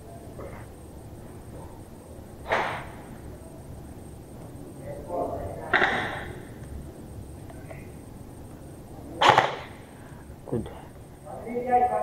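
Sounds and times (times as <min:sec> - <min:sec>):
airsoft gunfire echoing: 0:09.2 - 0:09.8.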